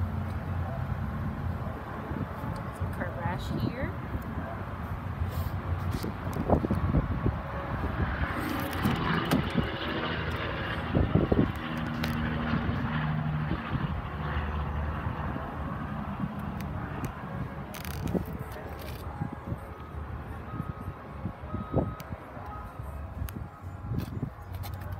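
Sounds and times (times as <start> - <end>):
distant engine hum: 0.0 - 24.9.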